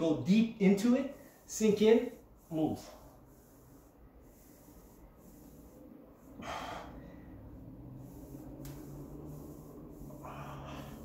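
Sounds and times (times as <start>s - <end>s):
man breathing out through nose: 6.3s - 7.6s, 10.2s - 11.0s.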